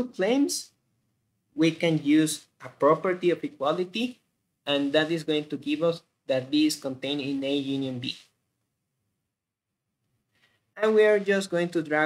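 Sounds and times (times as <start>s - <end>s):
man's voice: 1.6s - 8.3s, 10.8s - 12.0s.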